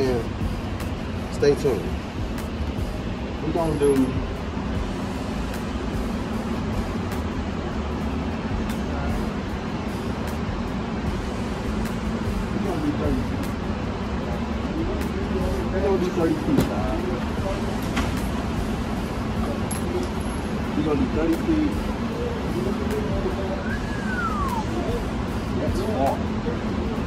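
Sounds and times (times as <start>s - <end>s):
low background rumble: 0.0s - 27.0s
muffled voices: 8.5s - 27.0s.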